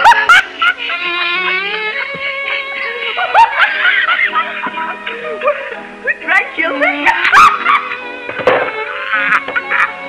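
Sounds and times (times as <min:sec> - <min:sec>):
men laughing hard: 0:00.0 - 0:05.9, 0:06.8 - 0:10.0.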